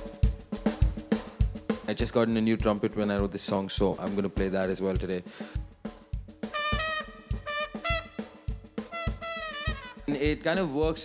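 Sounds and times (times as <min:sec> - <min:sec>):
kick drum beat: 0:05.0 - 0:10.0
trumpet melody: 0:06.4 - 0:10.3.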